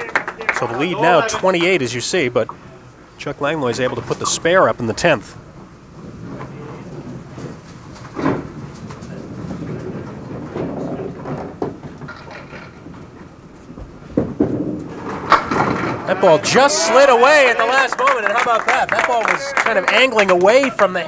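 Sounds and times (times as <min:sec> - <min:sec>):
crowd murmuring: 0:00.0 - 0:12.8, 0:15.7 - 0:21.0
bowling ball rolling on lane: 0:05.2 - 0:19.0
bowling pins crashing: 0:06.0 - 0:18.2.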